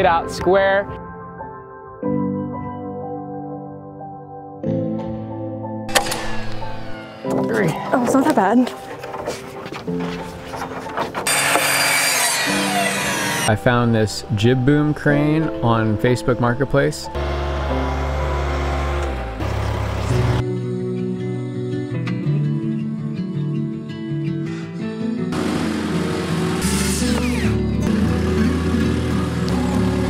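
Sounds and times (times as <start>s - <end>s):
background music: 0.0s - 30.0s
nail gun bang: 5.9s - 7.3s
diesel engine running: 17.2s - 20.4s, 25.4s - 30.0s.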